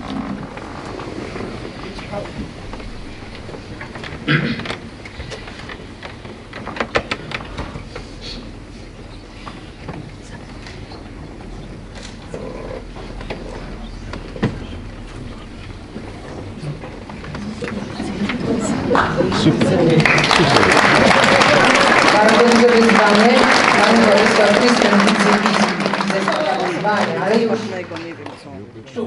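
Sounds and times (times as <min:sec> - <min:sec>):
audience noise: 0:00.0 - 0:29.0
low room hum: 0:00.0 - 0:29.0
faint murmuring: 0:07.2 - 0:29.0.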